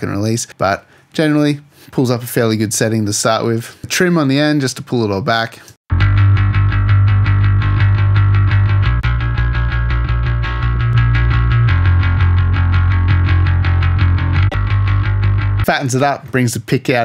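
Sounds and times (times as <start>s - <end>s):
distorted electric bass riff: 5.9s - 16.0s.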